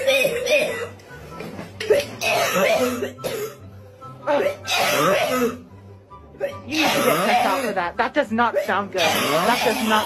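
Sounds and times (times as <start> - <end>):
person coughing: 0.0 - 1.0, 1.8 - 3.6, 4.3 - 5.6, 6.4 - 7.8, 9.0 - 10.0
background music: 0.0 - 10.0.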